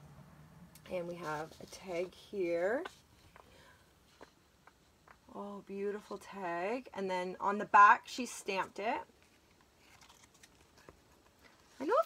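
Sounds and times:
woman speaking: 0:00.9 - 0:03.0, 0:05.3 - 0:09.1, 0:11.8 - 0:12.0
paper rustling and ticks: 0:09.2 - 0:12.0.

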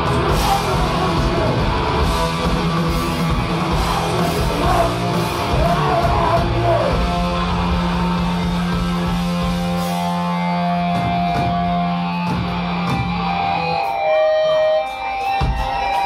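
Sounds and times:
drum and cymbal hits: 0:14.9 - 0:16.0.

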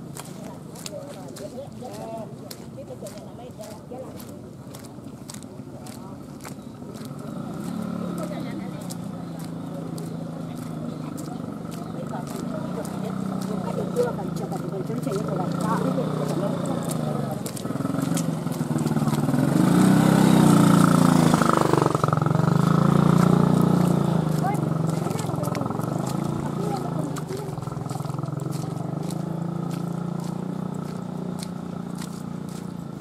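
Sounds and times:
motorcycle passing by: 0:05.3 - 0:33.0.

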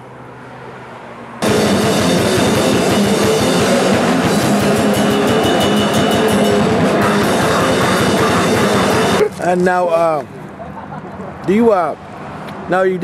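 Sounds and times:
heavy metal music: 0:01.4 - 0:09.4.

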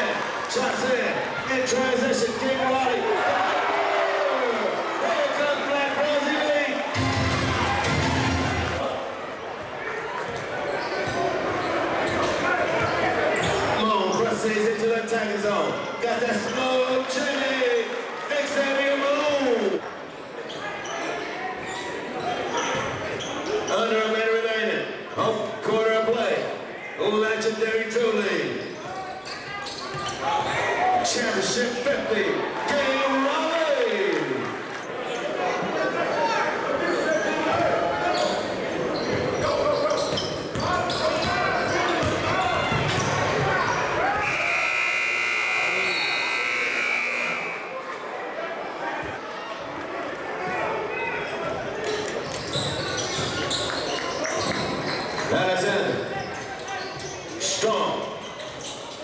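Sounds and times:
crowd voices and shouts: 0:00.0 - 0:59.0
basketball bouncing: 0:42.0 - 0:43.5
high buzzer tone: 0:44.2 - 0:47.8.

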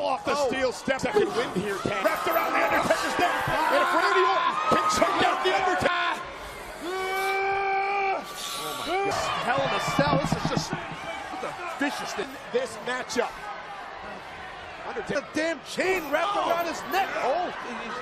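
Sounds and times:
arena crowd noise: 0:00.0 - 0:18.0.

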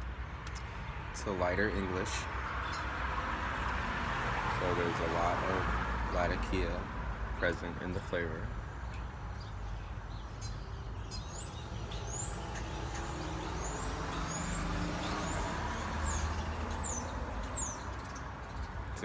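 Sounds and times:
vehicle passing with low rumble: 0:00.6 - 0:19.0
small bird chirping: 0:08.6 - 0:19.0.

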